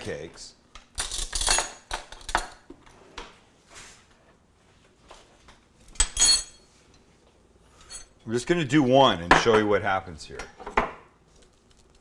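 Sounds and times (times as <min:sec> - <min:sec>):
metallic clatter with ring: 0:06.0 - 0:06.6.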